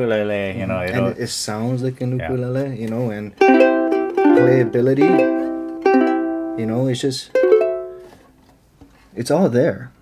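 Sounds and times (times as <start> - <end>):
ukulele chord strummed: 3.4 - 8.2.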